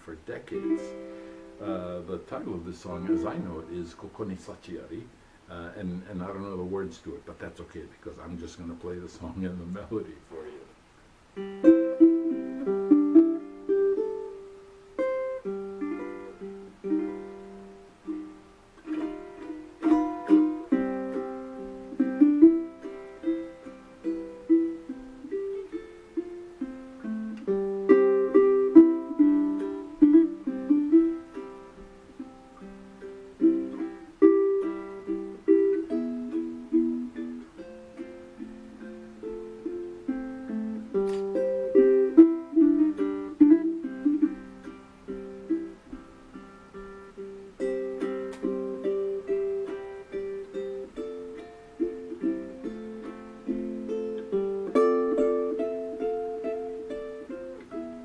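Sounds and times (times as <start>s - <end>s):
ukulele fingerstyle melody: 0.0s - 5.0s, 11.3s - 58.0s.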